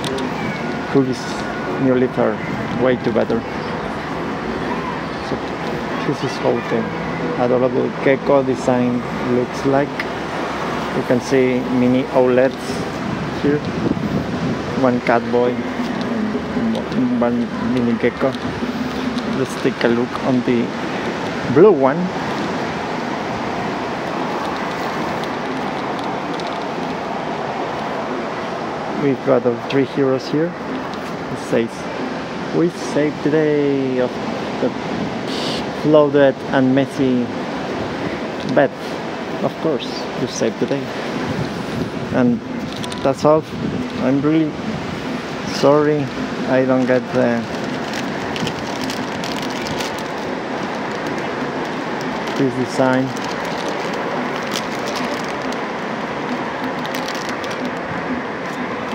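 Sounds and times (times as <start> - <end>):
outdoor background noise: 0.0 - 58.9
road traffic: 0.0 - 58.9
faint plastic rustling: 46.8 - 57.8
plastic wrapper crinkling and tearing: 47.4 - 55.6, 56.2 - 57.8.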